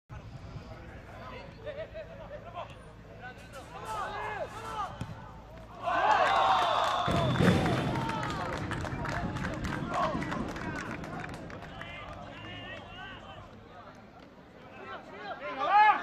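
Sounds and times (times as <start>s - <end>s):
crowd shouting and cheering: 3.7s - 13.7s, 14.6s - 16.0s
crowd clapping: 6.1s - 14.0s.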